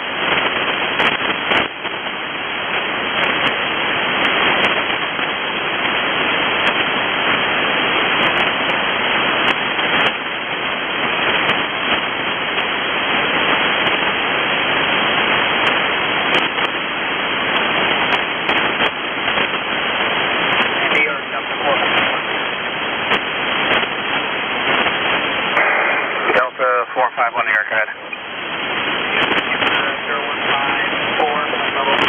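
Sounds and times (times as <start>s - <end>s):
radio static hiss: 0.0s - 32.0s
radio voice: 20.6s - 22.5s, 25.6s - 28.4s, 29.0s - 32.0s.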